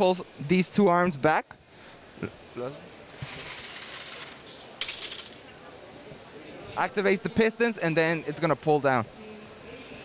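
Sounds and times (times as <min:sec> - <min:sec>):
motor ratcheting whir: 0:03.1 - 0:05.4.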